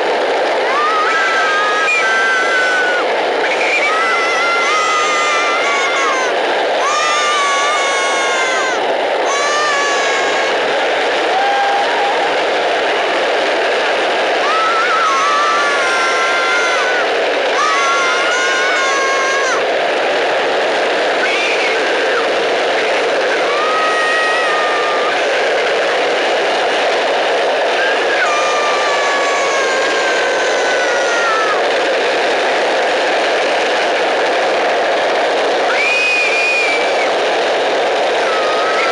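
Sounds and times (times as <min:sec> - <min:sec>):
wheels rolling on asphalt: 0:00.0 - 0:38.9.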